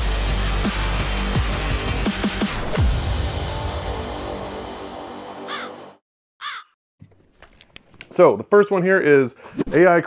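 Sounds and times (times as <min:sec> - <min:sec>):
crow cawing: 0:05.5 - 0:05.8, 0:06.4 - 0:06.8.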